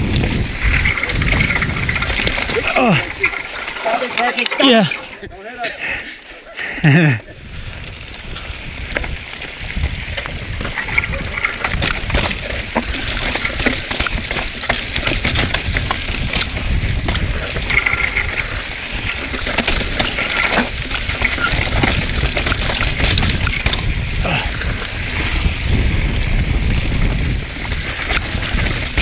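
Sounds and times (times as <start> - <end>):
wind rumbling on microphone: 0.0 - 3.8, 6.8 - 29.0
bike rattling over bumps: 0.0 - 29.0
bike tyres on dirt and rocks: 0.0 - 29.0.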